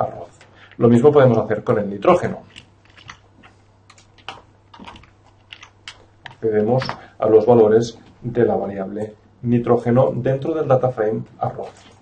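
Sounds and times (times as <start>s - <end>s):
computer keyboard typing: 2.1s - 7.0s.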